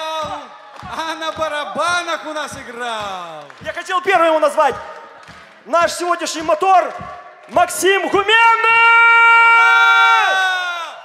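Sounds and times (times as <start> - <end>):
man shouting into microphone: 5.7 - 11.0.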